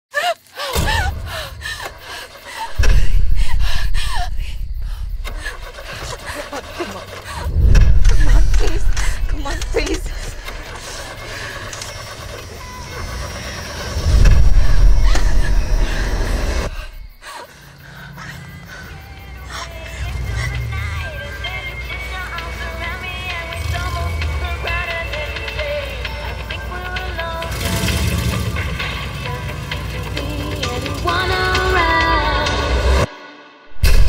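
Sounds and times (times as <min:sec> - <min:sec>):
deep bass hits: 0:02.7 - 0:05.7, 0:07.4 - 0:10.7, 0:14.0 - 0:17.1, 0:33.7 - 0:34.0.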